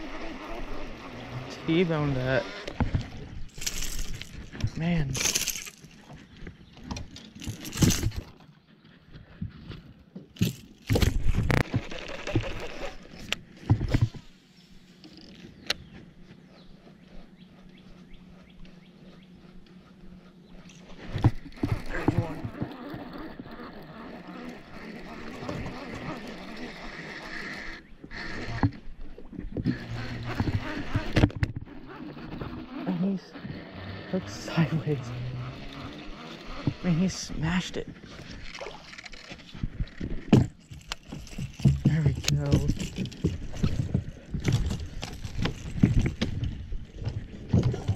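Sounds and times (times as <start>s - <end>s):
steady low hum: 0.0s - 47.9s.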